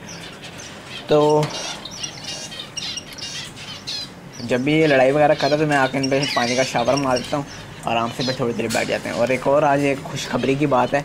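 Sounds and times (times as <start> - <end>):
finches chirping: 0.0 - 11.0.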